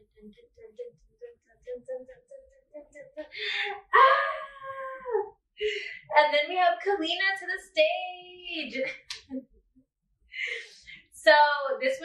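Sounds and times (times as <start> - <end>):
woman gasping: 3.3 - 3.9.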